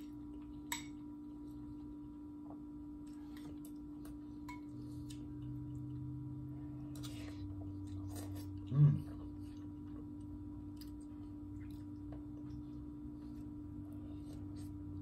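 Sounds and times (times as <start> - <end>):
chewing: 0.0 - 6.1, 6.7 - 15.0
electrical hum: 0.0 - 15.0.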